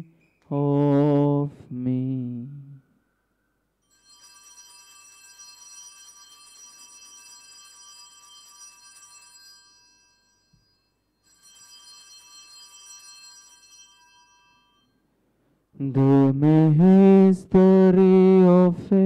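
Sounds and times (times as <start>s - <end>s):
altar bells ringing: 3.8s - 15.1s.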